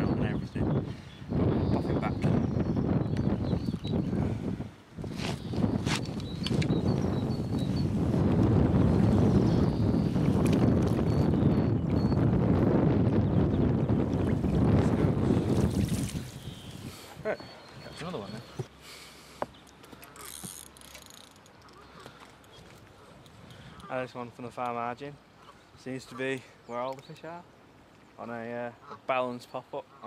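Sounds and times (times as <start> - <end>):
wind buffeting microphone: 0.0 - 18.5.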